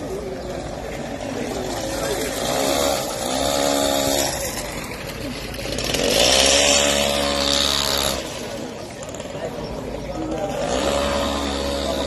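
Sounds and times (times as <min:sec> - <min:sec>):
small engine revving: 0:00.6 - 0:12.0.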